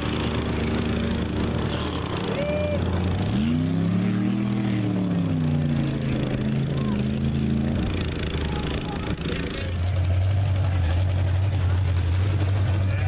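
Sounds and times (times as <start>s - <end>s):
truck engine revving: 0.0s - 13.0s.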